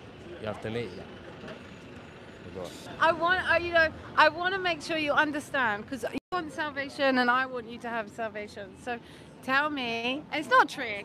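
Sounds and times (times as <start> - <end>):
low hum of traffic: 0.0 - 11.0.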